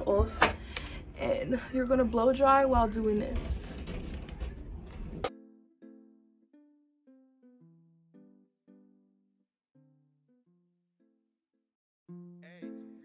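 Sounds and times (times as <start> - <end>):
plucked-string background music: 0.0 - 11.4, 12.1 - 13.0.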